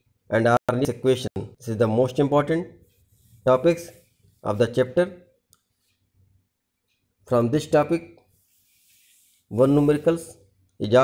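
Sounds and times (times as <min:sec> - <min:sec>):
man speaking: 0:00.3 - 0:05.3, 0:07.2 - 0:08.2, 0:09.5 - 0:11.0.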